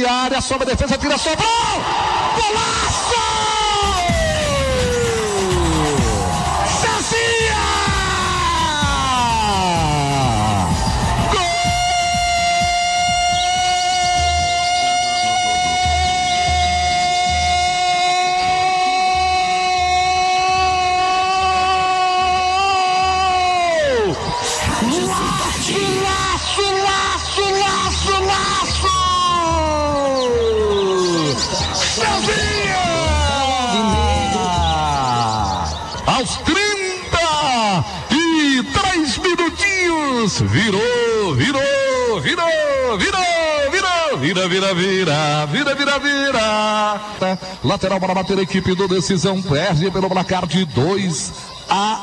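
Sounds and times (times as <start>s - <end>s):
electronic music: 0.8s - 52.0s.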